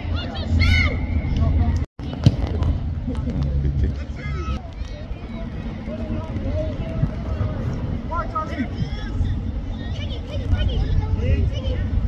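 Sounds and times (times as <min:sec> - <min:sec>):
players and spectators shouting: 0:04.1 - 0:11.8.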